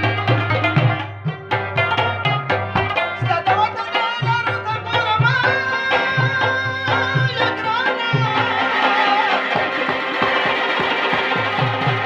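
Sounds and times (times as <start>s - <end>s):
hand drum slaps: 9.4s - 12.0s.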